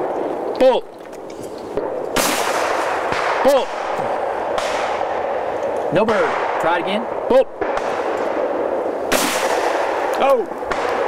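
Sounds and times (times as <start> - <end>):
shotgun shot echoing: 1.8 - 6.7, 7.6 - 11.0.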